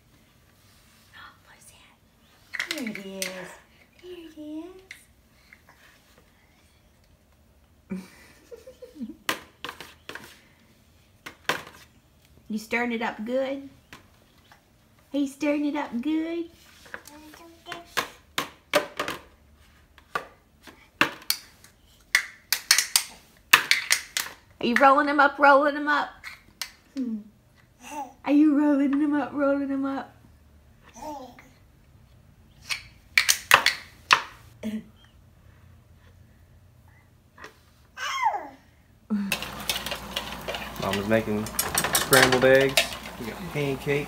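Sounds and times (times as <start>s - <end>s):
toys clacking in plastic bucket: 2.5s - 3.5s, 39.3s - 43.8s
eggs sizzling in a frying pan: 39.3s - 44.0s
wire whisk clinking: 39.3s - 44.0s.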